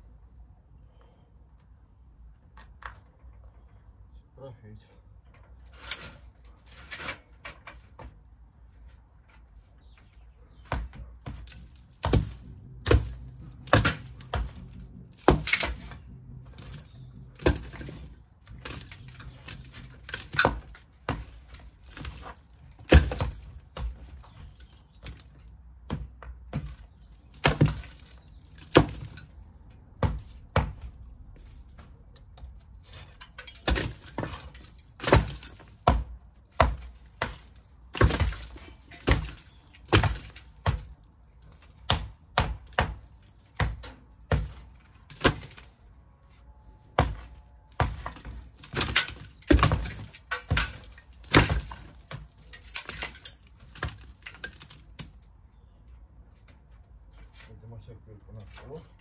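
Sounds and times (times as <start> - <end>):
bricks clattering onto rubble: 47.8 - 55.2.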